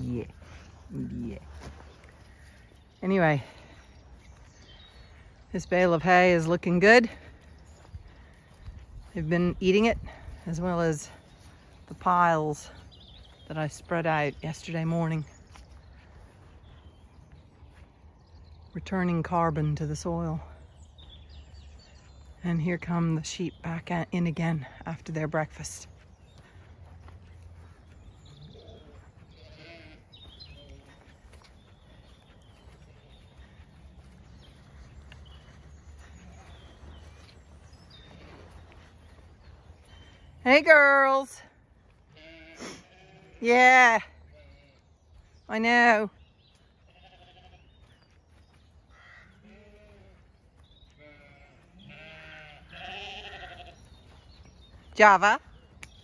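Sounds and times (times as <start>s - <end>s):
sheep bleating faintly: 51.0s - 53.8s.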